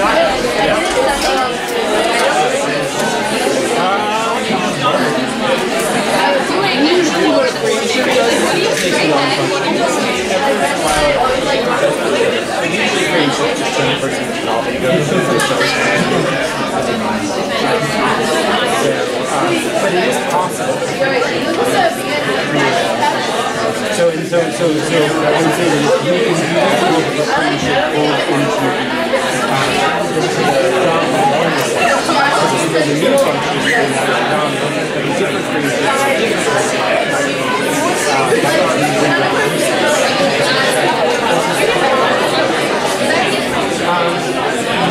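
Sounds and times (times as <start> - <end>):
students chattering: 0.0 - 44.9.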